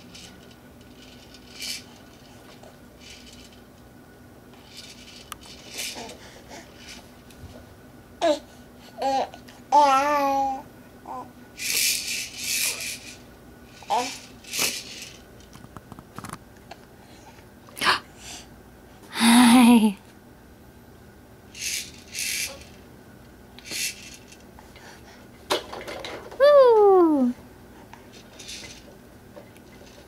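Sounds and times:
baby making breathy sounds: 19.1s - 20.0s.

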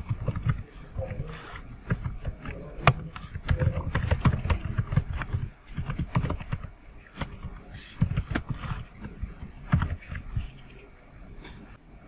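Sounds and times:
typing on a keyboard: 0.0s - 10.5s.

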